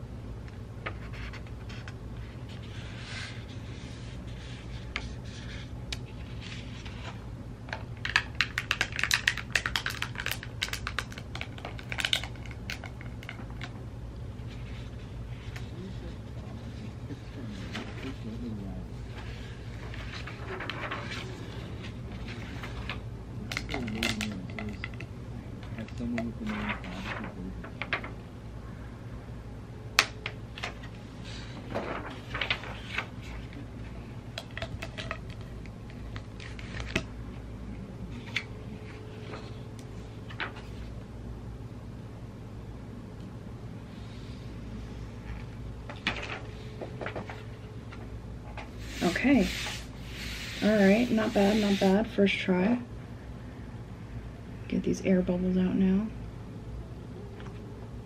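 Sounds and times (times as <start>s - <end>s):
plastic film crackling: 8.0s - 13.7s.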